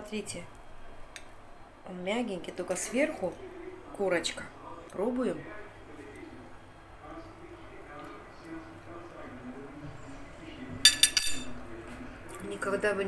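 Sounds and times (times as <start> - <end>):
fork clinking against a plate: 10.8 - 11.6.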